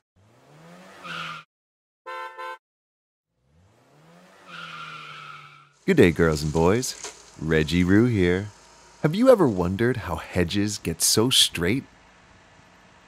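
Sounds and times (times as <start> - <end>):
car engine revving: 0.2 - 1.4, 3.3 - 11.0
car horn beeps: 2.0 - 2.6.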